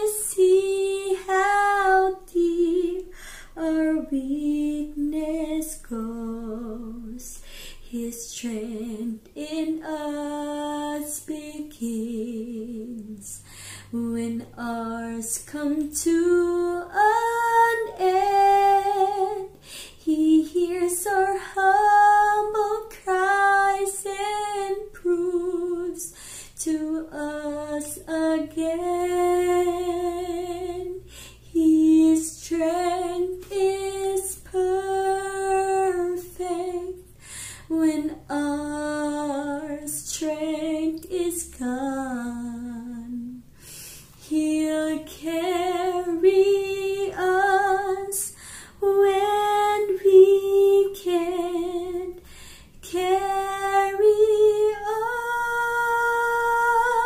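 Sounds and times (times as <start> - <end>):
woman singing worship song: 0.0 - 57.0
woman breathing in: 3.1 - 3.6, 7.4 - 7.8, 13.4 - 13.9, 19.6 - 20.0, 26.1 - 26.6, 31.0 - 31.4, 37.1 - 37.7, 43.5 - 44.2, 48.3 - 48.8, 52.2 - 52.8.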